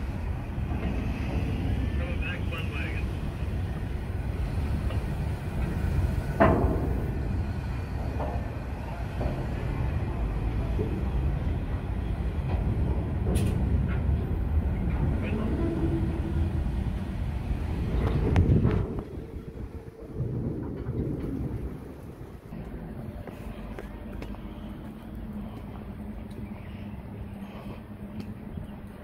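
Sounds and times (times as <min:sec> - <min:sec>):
freight train wheels rumbling: 0:00.0 - 0:29.0.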